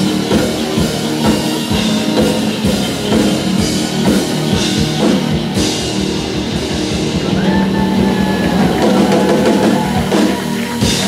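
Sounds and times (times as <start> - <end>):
drum kit beat: 0.0 - 11.0
electric guitars: 0.0 - 11.0.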